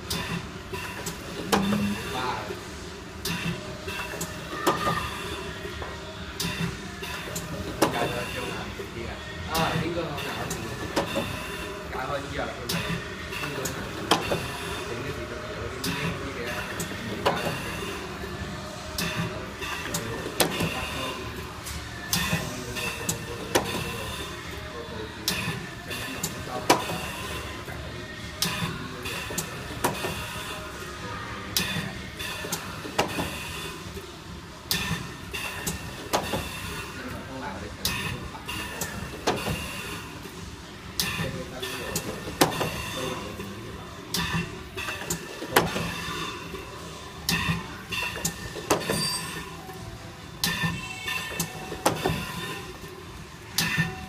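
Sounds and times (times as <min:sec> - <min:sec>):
workshop machine noise: 0:00.0 - 0:54.0.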